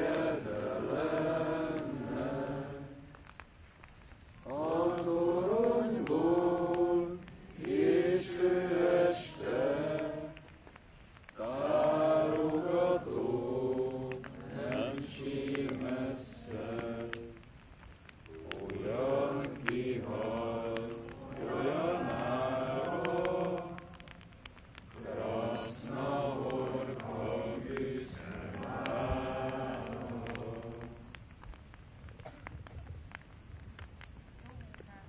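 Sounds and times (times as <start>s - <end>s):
group singing in unison: 0.0s - 3.2s, 4.4s - 10.5s, 11.4s - 17.4s, 18.4s - 24.2s, 25.0s - 31.2s.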